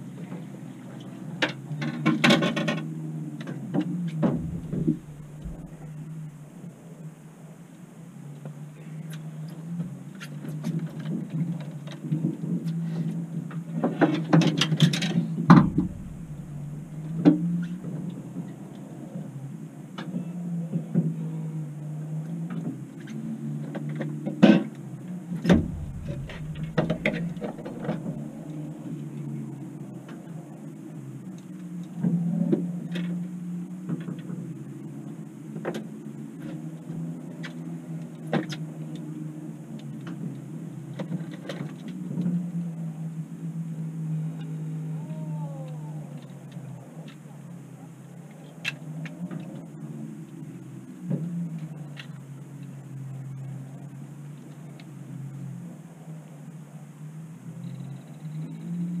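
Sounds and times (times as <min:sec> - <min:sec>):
knocks and clatter on boat: 0:04.2 - 0:06.1, 0:13.9 - 0:17.2, 0:25.5 - 0:28.1
boat motor humming: 0:04.2 - 0:06.6, 0:15.5 - 0:17.7, 0:25.5 - 0:28.5.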